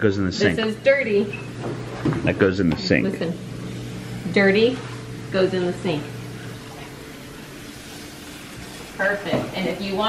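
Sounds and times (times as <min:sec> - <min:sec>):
faint steady hum tones: 0:00.0 - 0:10.0
room tone hum and hiss: 0:00.0 - 0:10.0.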